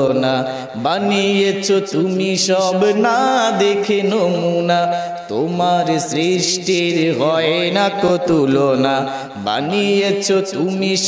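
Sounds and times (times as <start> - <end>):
man singing devotional song: 0.0 - 11.0
singer breathing: 0.4 - 0.8, 4.9 - 5.3, 9.0 - 9.4.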